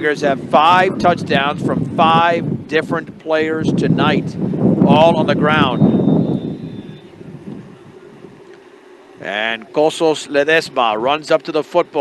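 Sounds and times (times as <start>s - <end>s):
wind buffeting a microphone: 0.0s - 8.6s.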